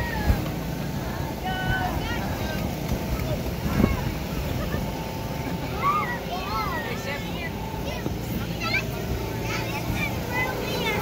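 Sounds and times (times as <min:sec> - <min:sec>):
air blower humming: 0:00.0 - 0:11.0
children's voices calling: 0:00.0 - 0:11.0.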